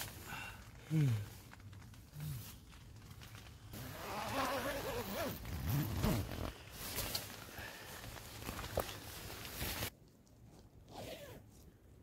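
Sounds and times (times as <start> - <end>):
tent zipper pulled open: 3.7 - 7.3, 10.8 - 11.6.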